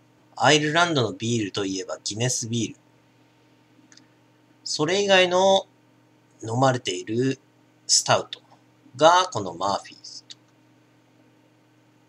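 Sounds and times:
faint steady hum: 0.0 - 12.0
person speaking: 0.4 - 2.8, 6.4 - 10.3
faint click: 3.9 - 4.1.

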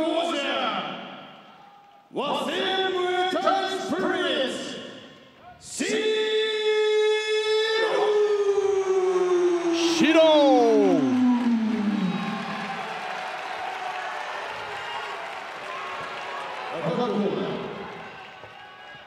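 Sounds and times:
ring announcer shouting: 5.5 - 12.9
crowd cheering and applauding: 8.6 - 19.0.

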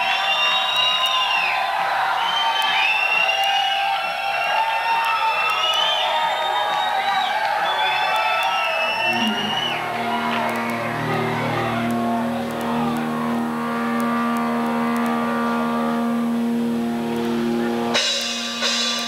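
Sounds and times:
electric guitar feedback squeals: 8.8 - 18.8
band playing: 9.0 - 19.0
distorted guitar note ringing: 9.0 - 19.0.

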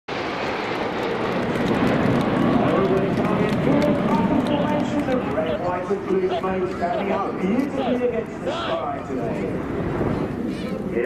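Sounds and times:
jet aircraft noise: 0.1 - 11.0
voices talking: 2.6 - 9.7.

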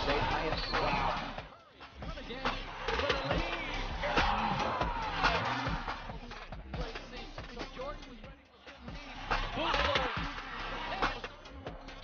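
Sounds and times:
commentator speaking: 0.0 - 1.4
arena crowd: 0.0 - 12.0
background music: 0.0 - 12.0.

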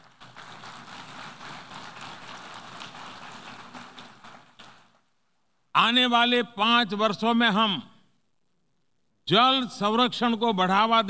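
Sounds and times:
audience applauding: 0.0 - 5.0.

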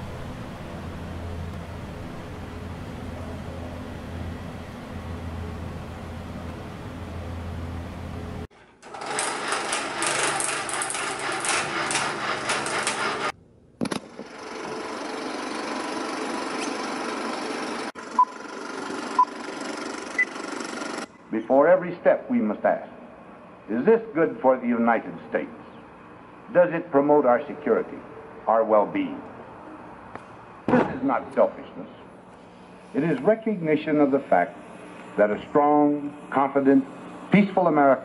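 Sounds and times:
low hum: 0.0 - 8.5
film projector clattering: 8.6 - 17.9.

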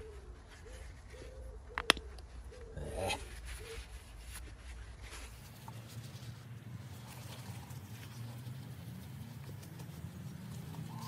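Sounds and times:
dove cooing: 0.0 - 3.9, 10.6 - 11.0.

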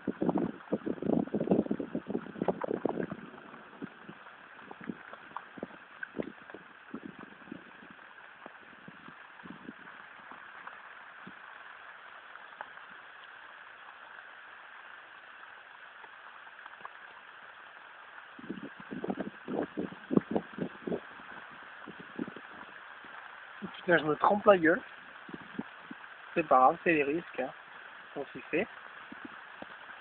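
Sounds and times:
rain hissing: 0.0 - 30.0.

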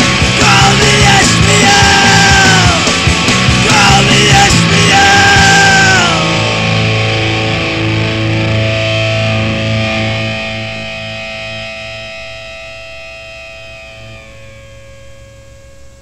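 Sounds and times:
distorted electric guitar chord ringing: 0.0 - 16.0.

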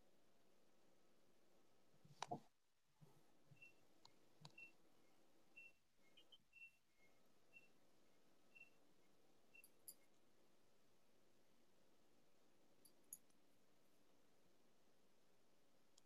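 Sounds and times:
faint high-pitched chirps: 3.5 - 10.2
soft clicks: 3.6 - 4.7.

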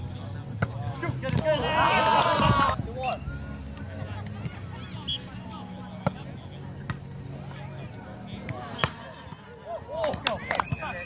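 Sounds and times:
players calling out: 0.8 - 3.3.

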